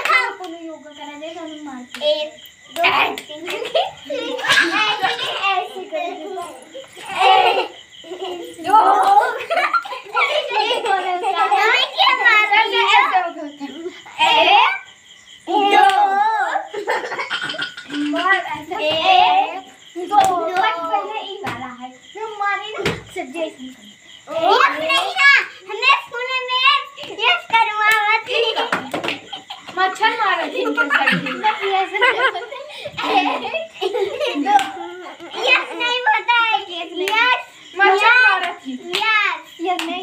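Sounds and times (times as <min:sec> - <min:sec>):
children laughing: 0:02.8 - 0:21.2, 0:24.3 - 0:38.8.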